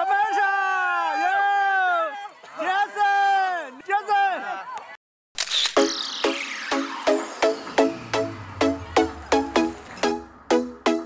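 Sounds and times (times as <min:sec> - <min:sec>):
electronic music with falling sweep: 0:05.4 - 0:11.0.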